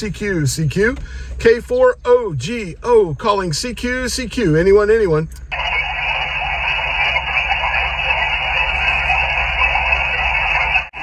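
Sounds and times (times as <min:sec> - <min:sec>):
radio static hissing: 0:05.5 - 0:11.0.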